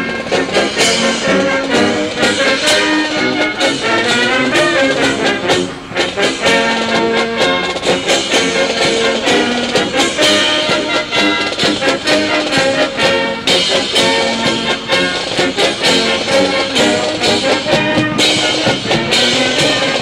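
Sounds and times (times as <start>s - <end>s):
military brass band playing: 0.0s - 20.0s.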